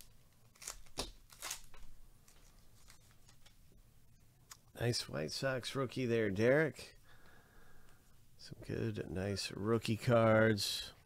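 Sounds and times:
cards being handled: 0.0 - 3.6
wrapper crinkling rips: 0.0 - 3.6.

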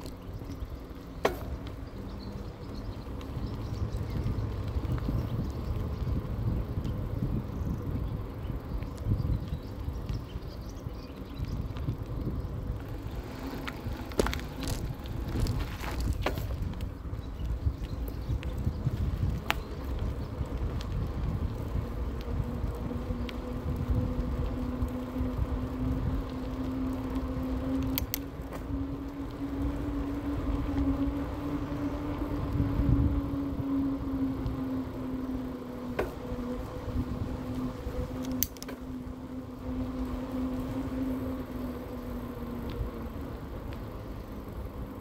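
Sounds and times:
electric bike motor whining: 0.0 - 45.0
tyres rumbling on asphalt: 0.0 - 45.0
wind: 0.0 - 45.0
sharp clicks: 27.8 - 28.6, 38.2 - 38.8.

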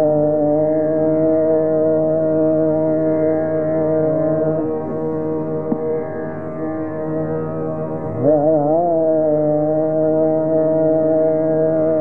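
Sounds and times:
man singing long note: 8.1 - 12.0.

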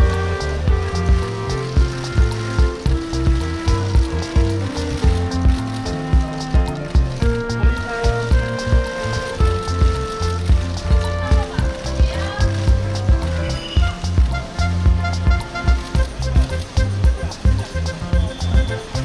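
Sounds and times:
background music with steady beat: 0.0 - 19.0.

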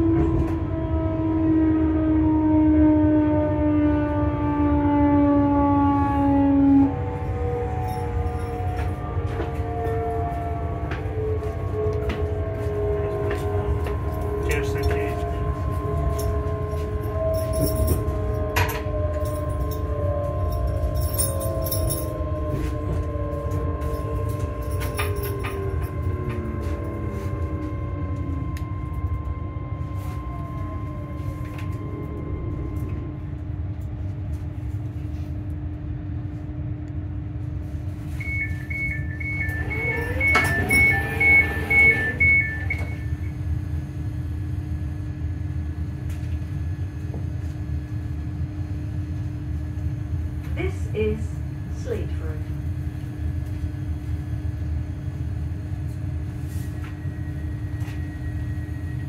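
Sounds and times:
train motors whining down: 0.0 - 35.3, 37.6 - 48.0
train wheels rumbling: 5.8 - 59.0
door warning beeps: 38.1 - 43.4
train doors sliding open: 38.2 - 43.2.

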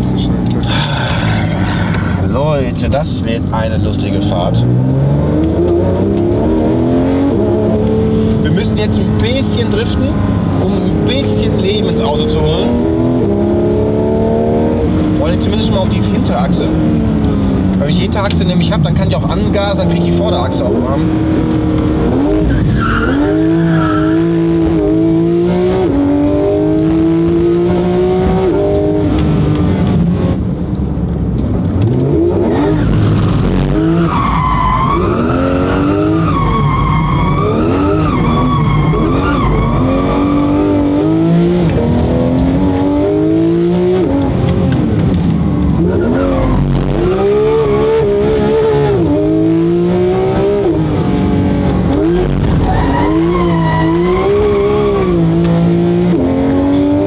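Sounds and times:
car engine revving: 0.0 - 57.0
tyres squealing: 52.0 - 55.3.

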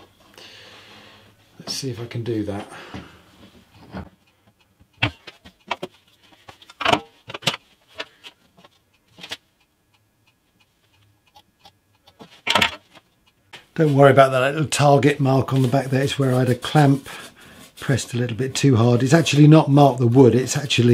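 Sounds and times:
hand tools clicking and tapping: 3.5 - 8.2.

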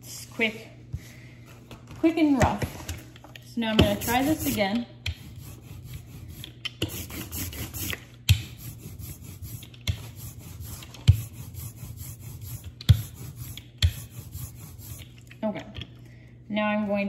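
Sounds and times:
rubber roller rolling over ink: 3.8 - 15.1.

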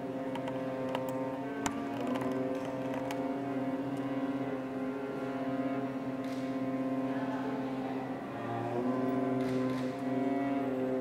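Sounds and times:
cello sustaining low note: 0.0 - 11.0
string quartet holding bowed chord: 0.0 - 11.0.

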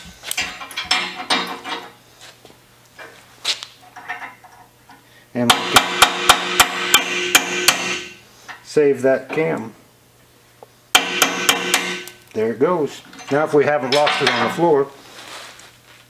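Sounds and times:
hammer striking metal punch: 5.5 - 8.2, 10.9 - 12.2
metallic ringing: 5.5 - 8.2, 11.0 - 12.2.

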